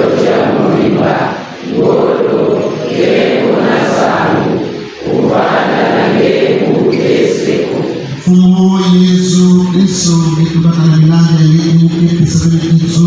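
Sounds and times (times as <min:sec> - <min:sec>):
congregation chanting: 0:00.0 - 0:13.0.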